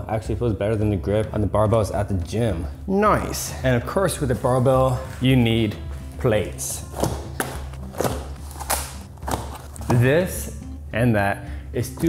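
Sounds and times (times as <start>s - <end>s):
background music: 0.0s - 12.0s
boxes thudding on rubber mat: 6.9s - 10.1s.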